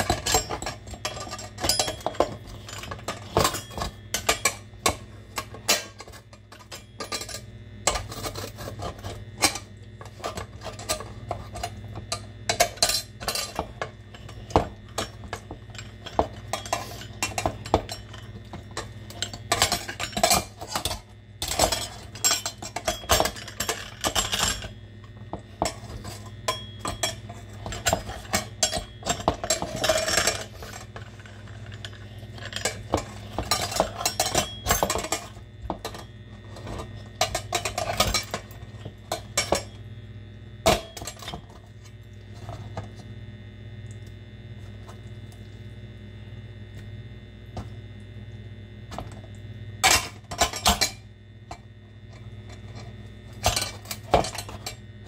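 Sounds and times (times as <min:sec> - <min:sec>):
food mill metallic scraping: 0:00.0 - 0:39.5.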